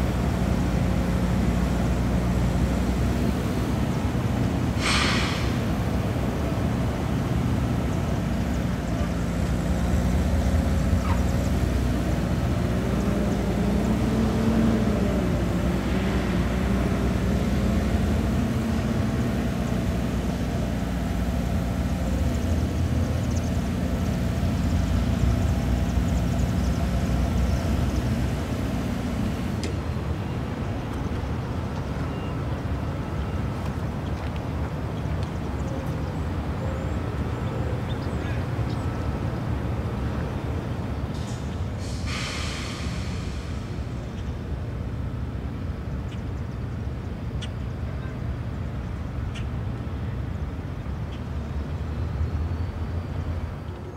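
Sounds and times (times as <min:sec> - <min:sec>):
low engine hum: 0:00.0 - 0:53.9.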